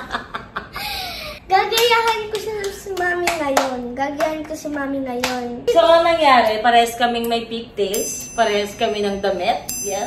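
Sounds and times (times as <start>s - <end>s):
girl clapping hands quickly: 1.6s - 4.4s.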